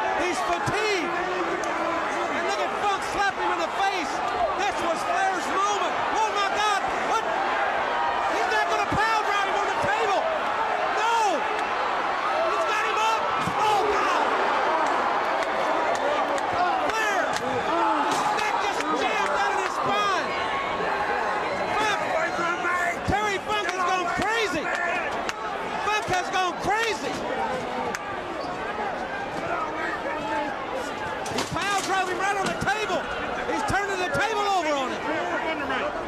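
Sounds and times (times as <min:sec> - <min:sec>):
crowd shouting and screaming: 0:00.0 - 0:36.0.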